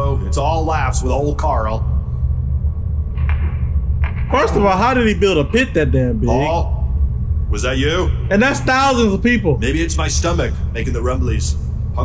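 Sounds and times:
deep low rumble: 0:00.0 - 0:12.0.

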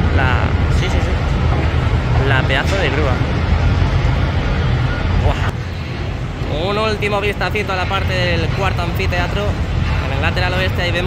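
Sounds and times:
construction machinery rumble: 0:00.0 - 0:11.0.

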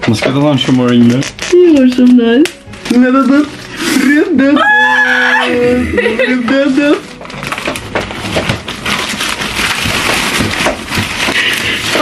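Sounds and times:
packaging crackling and rustling: 0:00.1 - 0:04.0, 0:06.5 - 0:12.0.

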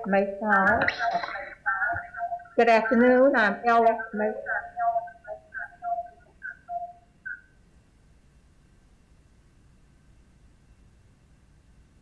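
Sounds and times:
voice breaking up on video call: 0:00.6 - 0:06.6.

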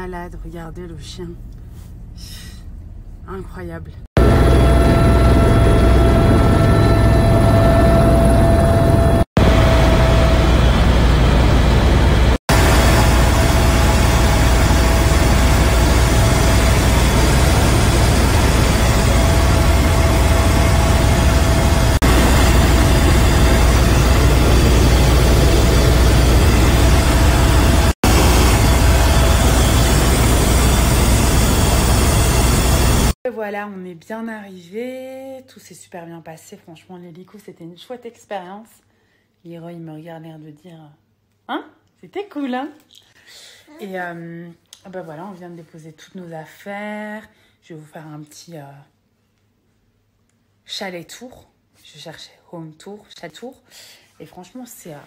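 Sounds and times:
helicopter rotor and engine: 0:04.2 - 0:33.2
steady whine: 0:04.2 - 0:33.2.

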